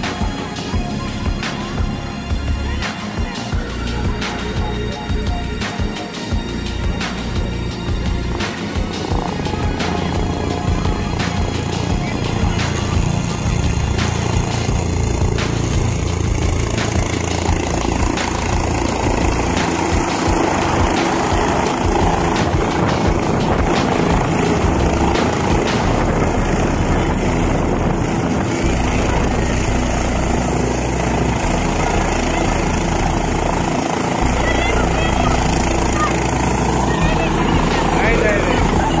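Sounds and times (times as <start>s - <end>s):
crowd voices: 0.0s - 39.0s
helicopter rotor and engine: 0.0s - 39.0s.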